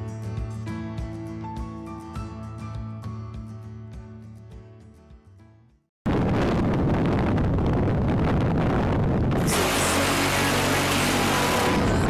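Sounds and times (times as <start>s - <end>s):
music: 0.0s - 5.9s, 9.5s - 12.0s
rotary cannon firing burst: 9.4s - 12.0s.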